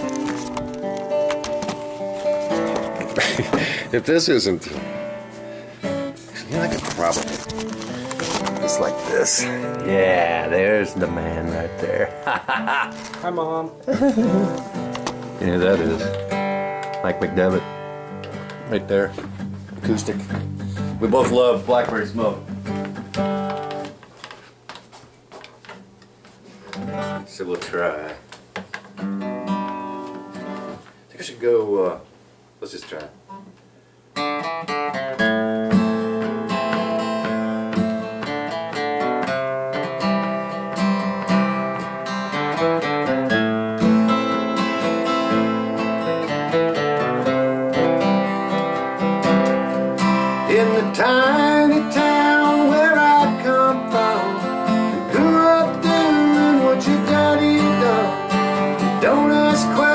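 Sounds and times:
rustling noise: 0.0 - 3.2, 6.6 - 9.2
acoustic guitar picking: 0.0 - 24.0, 25.4 - 30.9, 33.3 - 59.9.

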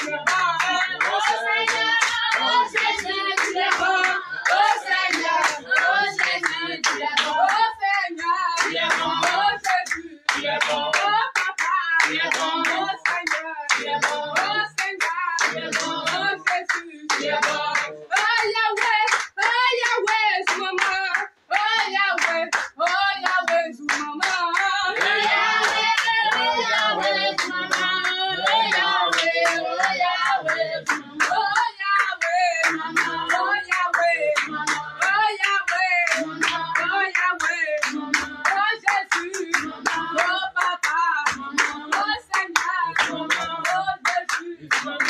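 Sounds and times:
congregation singing: 0.0 - 45.0
rhythmic hand clapping: 0.0 - 45.0.

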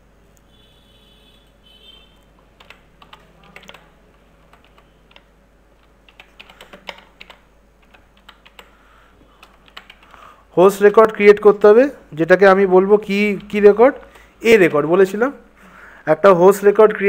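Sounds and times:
keyboard typing clicks: 2.2 - 8.8, 9.4 - 10.2.

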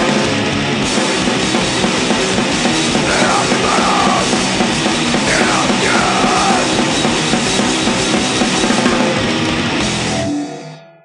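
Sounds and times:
punk band playing: 0.0 - 10.2.

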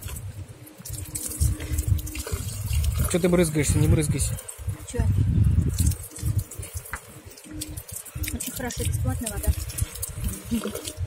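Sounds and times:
water running from fountain spout: 0.0 - 11.0
water splashing on pavement: 0.0 - 11.0.

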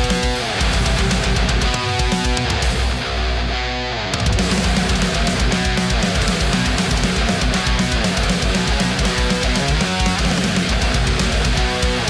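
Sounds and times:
distorted electric guitar riff: 0.0 - 12.0.

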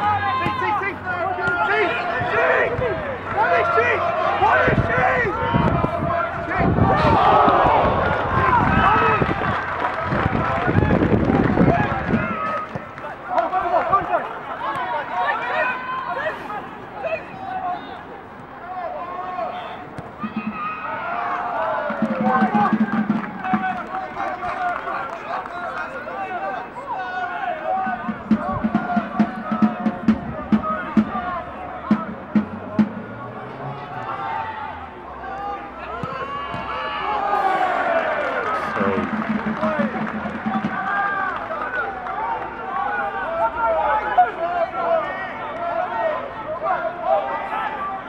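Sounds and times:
people shouting and calling: 0.0 - 9.2, 11.7 - 24.6
voices shouting outdoors: 0.0 - 48.0.

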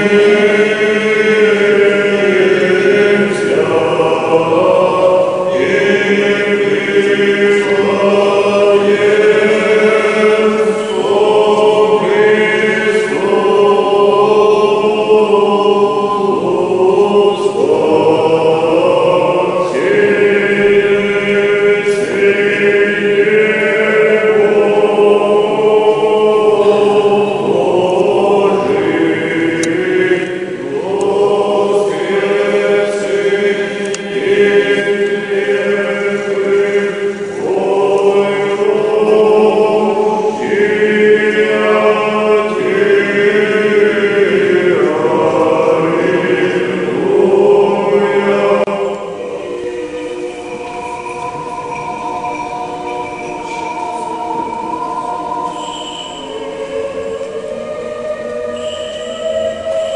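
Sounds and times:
choir chanting in harmony: 0.0 - 59.9.

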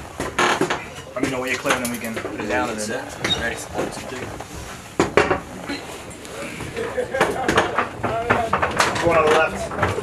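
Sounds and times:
low voices: 5.6 - 10.0.

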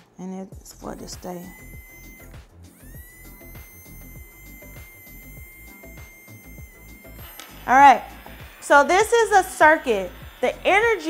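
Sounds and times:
background music: 0.1 - 11.0
small electric motor whine: 0.7 - 11.0.

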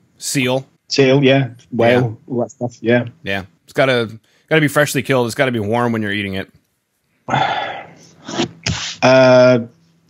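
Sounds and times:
man's breathy vocal burst: 7.3 - 9.0.

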